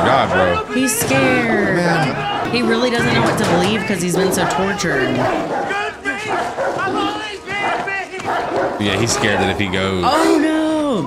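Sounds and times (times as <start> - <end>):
dogs barking and yelping: 0.0 - 10.5.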